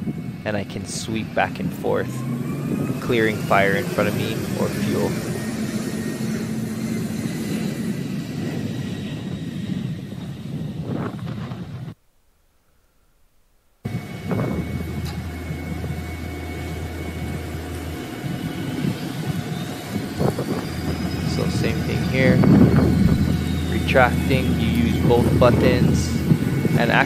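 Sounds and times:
low hum: 0.0 - 11.0, 11.9 - 27.0
fire truck engine rumble: 0.0 - 12.0, 13.8 - 27.0.

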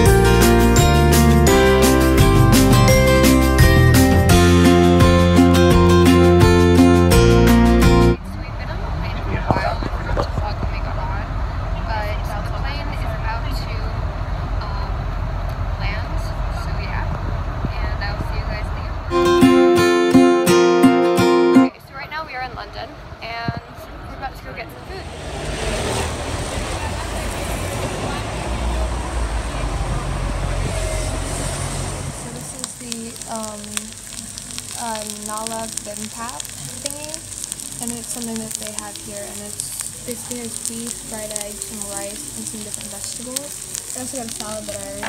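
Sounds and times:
food sizzling in hot bowl: 0.0 - 8.2, 24.9 - 45.0
bus engine rumble: 0.0 - 45.0
person speaking: 37.8 - 45.0.

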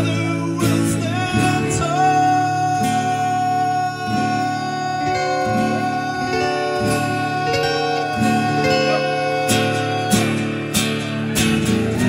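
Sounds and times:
acoustic guitars strumming chords: 0.0 - 12.0
long high held note: 4.8 - 10.8.

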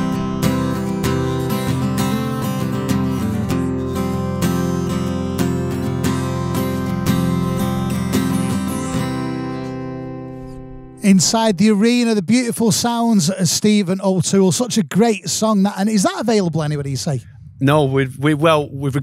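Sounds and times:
acoustic guitar strumming: 0.0 - 11.9.

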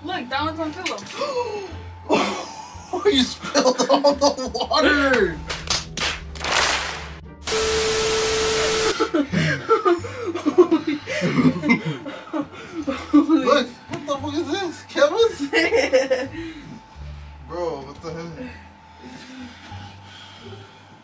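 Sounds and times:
quiet background music: 0.0 - 21.0
laughter: 2.1 - 2.6, 3.4 - 5.0, 9.0 - 13.4, 15.4 - 16.3.

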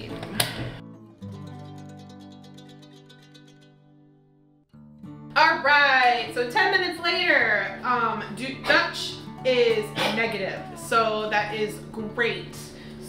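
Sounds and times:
woman speaking: 5.4 - 12.8.

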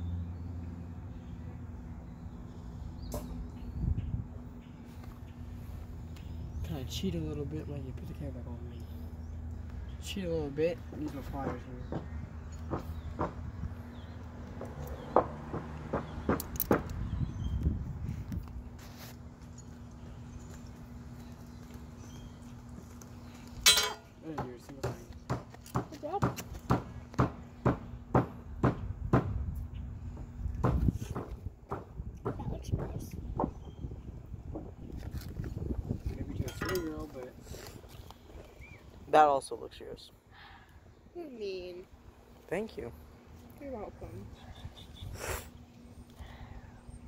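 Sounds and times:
steady low hum: 0.0 - 14.6, 17.0 - 47.0.

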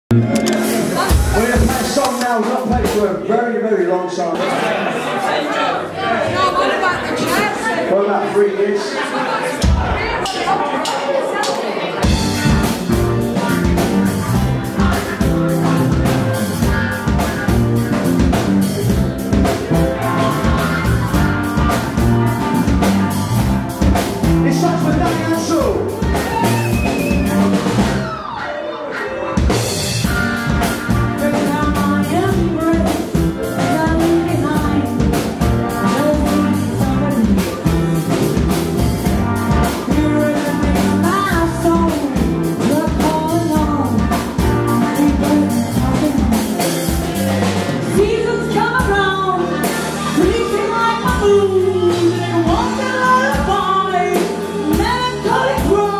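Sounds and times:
electric bass: 0.1 - 3.0, 12.0 - 28.1, 29.4 - 55.9
drum kit: 0.1 - 3.3, 9.6 - 55.9
woman singing into a microphone: 31.2 - 35.0, 39.9 - 44.2, 44.8 - 46.4, 47.8 - 55.9.

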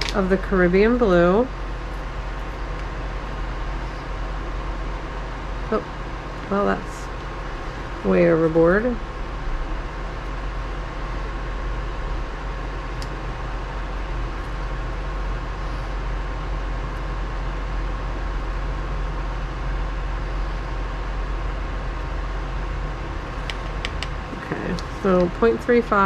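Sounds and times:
fan whirring hum: 0.0 - 26.0.

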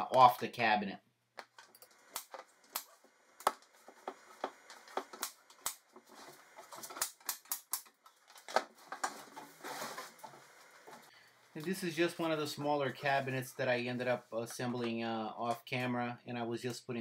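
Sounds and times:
rustling handling noise: 1.5 - 15.0.

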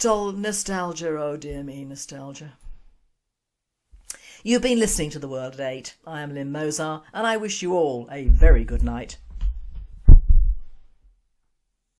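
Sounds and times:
deep low thuds: 8.3 - 10.8.

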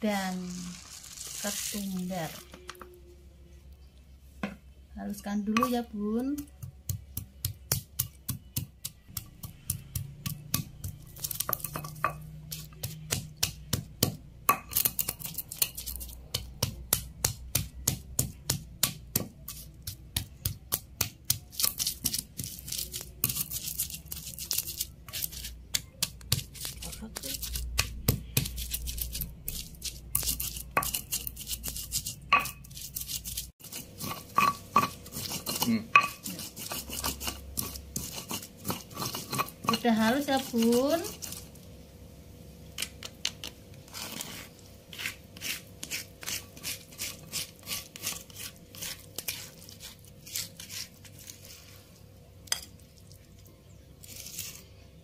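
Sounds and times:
stone pestle knocking in mortar: 5.5 - 15.7, 16.3 - 22.5, 32.3 - 32.7, 33.7 - 40.6
pestle grinding in stone mortar: 5.5 - 41.5, 43.9 - 51.5.

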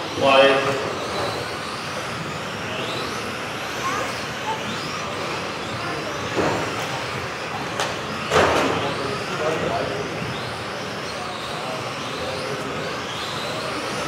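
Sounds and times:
model cars whirring: 0.0 - 14.0.

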